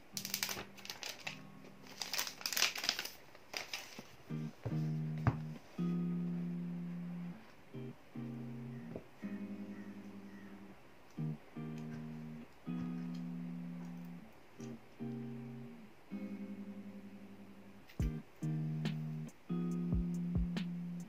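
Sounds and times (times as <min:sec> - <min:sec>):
softly plucked guitar chords: 0:00.0 - 0:01.9, 0:04.3 - 0:21.0.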